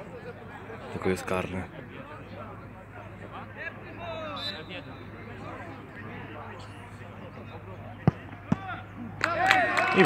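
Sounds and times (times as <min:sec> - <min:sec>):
football kicked thud: 0:08.0 - 0:08.7
men shouting and cheering: 0:08.5 - 0:10.0.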